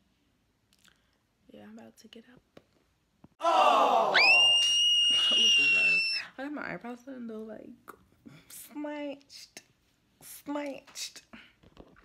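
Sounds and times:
people talking: 5.1s - 7.8s.

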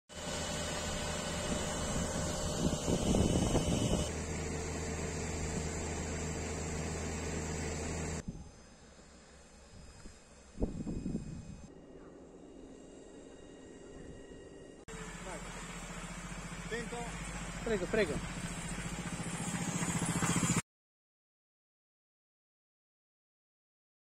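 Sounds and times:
fire engine pump droning: 0.1s - 10.4s, 14.9s - 20.6s
wind buffeting: 1.0s - 4.1s.

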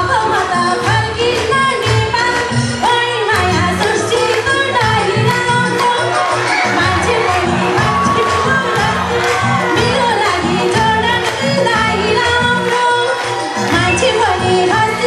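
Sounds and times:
rhythmic backing music: 0.0s - 15.0s
woman singing into a microphone: 0.0s - 15.0s
crowd cheering: 3.3s - 15.0s.

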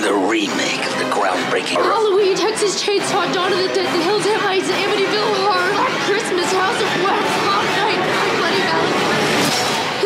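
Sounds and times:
indistinct talking voices: 0.0s - 10.0s.

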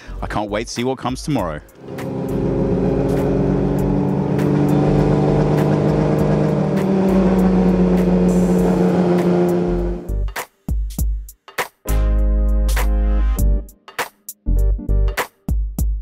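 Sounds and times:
racing car engines idling: 1.7s - 10.1s.

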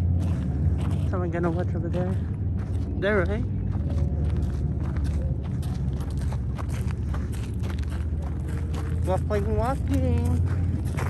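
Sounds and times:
footsteps on gravel: 0.0s - 11.0s
steady low rumble: 0.0s - 11.0s.

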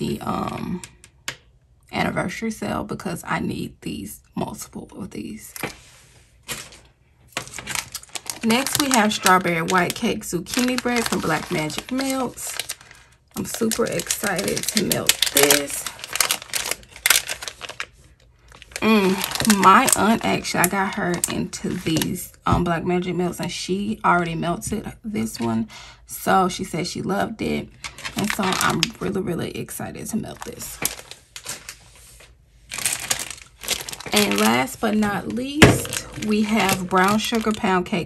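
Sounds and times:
plastic pouch crinkling: 6.5s - 22.1s, 27.8s - 29.0s, 30.3s - 38.0s.

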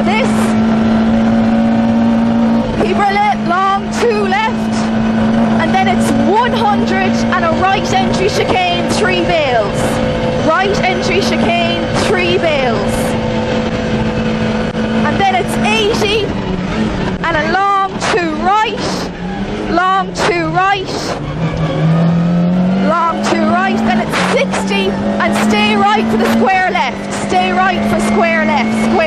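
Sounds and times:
rally car engine at high revs: 0.0s - 29.0s.

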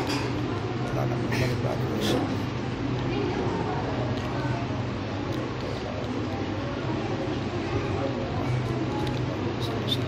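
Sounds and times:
fans humming: 0.0s - 10.0s.

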